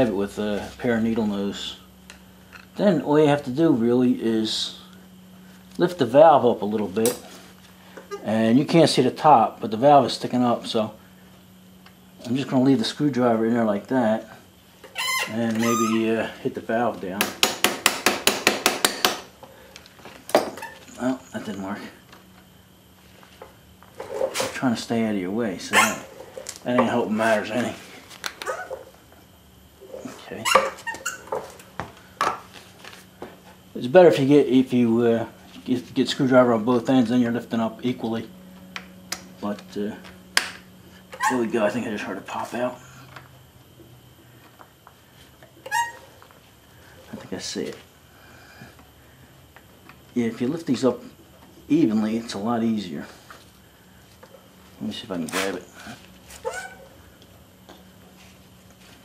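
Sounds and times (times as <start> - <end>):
low steady hum: 0.0 - 59.0
short sharp squeak: 14.9 - 16.0, 30.4 - 31.3, 45.6 - 46.1, 56.4 - 56.8.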